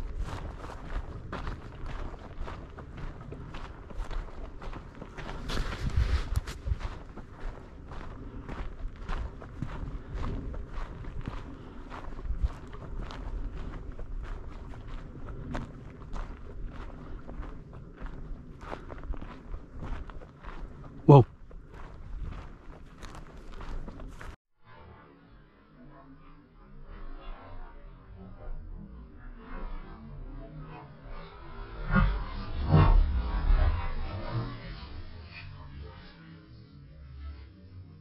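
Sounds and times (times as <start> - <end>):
footsteps crunching on gravel: 0.0 - 24.4.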